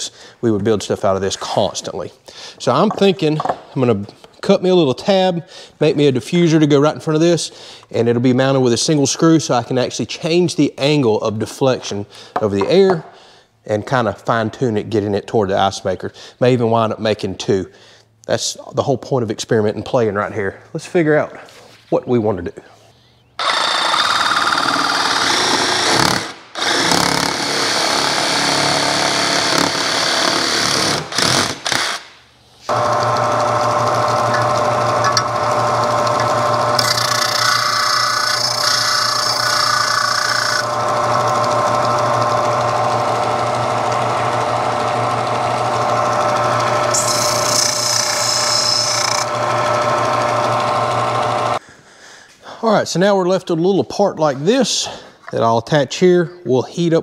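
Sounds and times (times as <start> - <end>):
power tool cutting plastic: 23.4 - 32.1, 32.7 - 51.6
sander rasping on plastic: 32.6 - 51.6
disc sander motor hum: 32.7 - 51.6.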